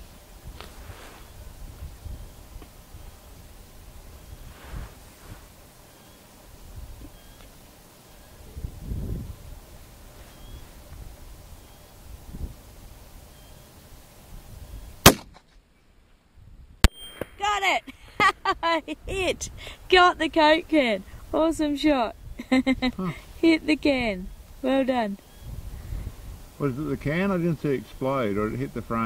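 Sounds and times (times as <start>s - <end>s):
rifle shot crack: 15.0s - 15.6s.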